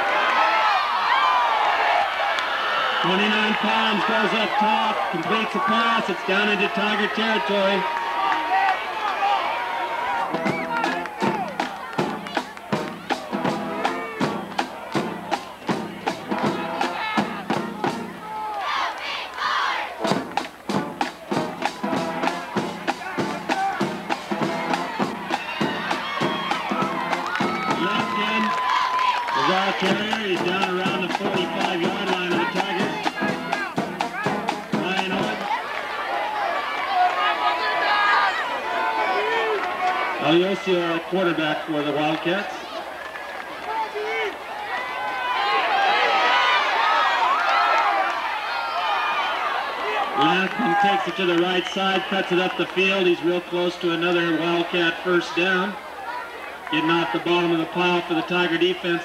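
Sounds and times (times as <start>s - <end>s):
crowd voices and cheering: 0.0s - 59.0s
drum and horn band music: 3.0s - 36.2s, 50.1s - 55.6s.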